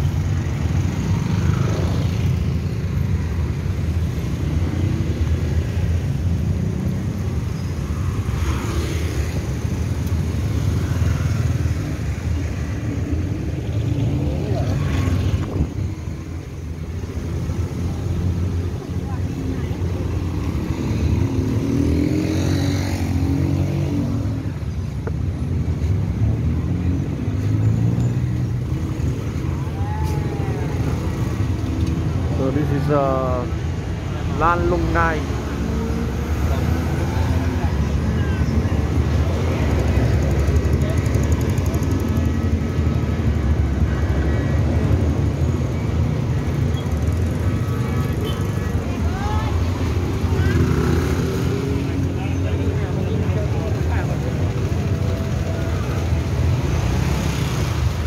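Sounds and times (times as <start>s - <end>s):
cars and motorcycles passing: 0.0s - 58.0s
passers-by talking: 3.9s - 58.0s.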